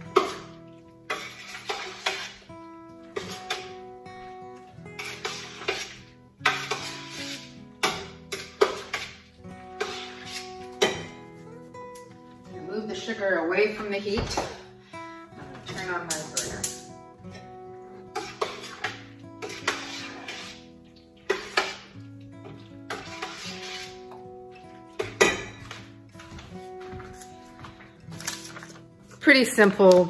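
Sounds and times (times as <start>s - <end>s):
utensil scraping steel pot: 0.0s - 11.3s, 15.7s - 25.9s
soft background music: 0.0s - 30.0s.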